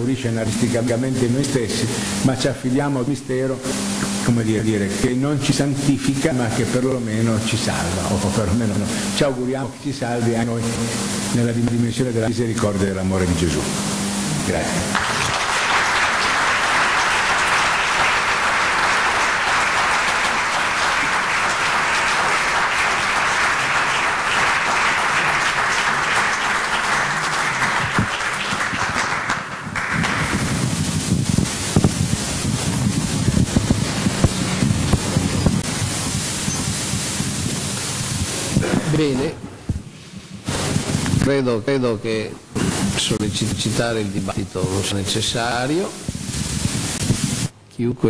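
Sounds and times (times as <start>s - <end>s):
rustling room noise: 0.0s - 41.5s, 42.4s - 47.6s
audience applauding: 14.5s - 31.8s.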